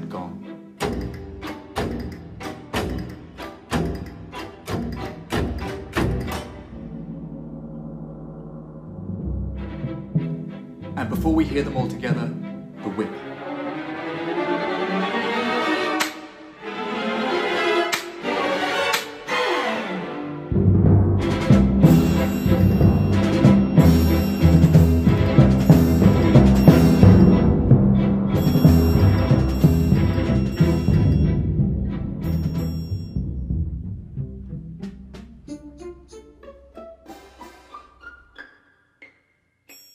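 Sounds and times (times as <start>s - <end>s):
triangle: 0.0s - 13.2s, 20.5s - 33.8s
strings playing sustained chords: 0.0s - 37.4s
timpani roll: 1.8s - 12.2s, 20.5s - 34.2s
xylophone notes: 21.8s - 27.7s, 28.3s - 31.6s, 32.2s - 33.3s.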